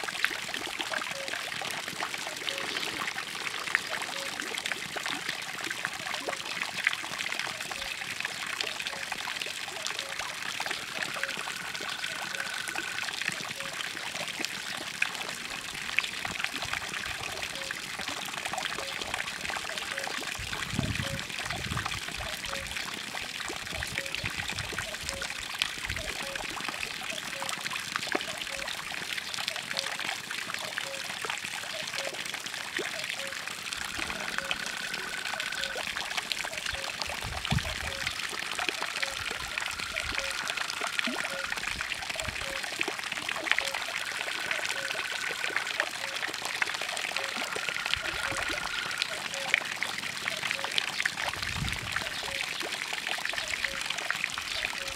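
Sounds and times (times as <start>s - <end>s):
fountain water splashing into pond: 0.0s - 54.9s.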